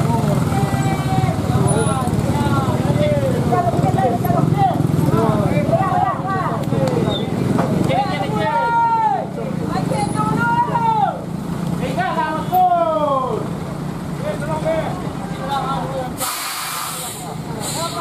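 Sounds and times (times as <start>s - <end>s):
people calling out: 0.0s - 3.0s, 4.0s - 11.3s
truck diesel engine running: 0.0s - 18.0s
air brakes hissing: 16.2s - 18.0s.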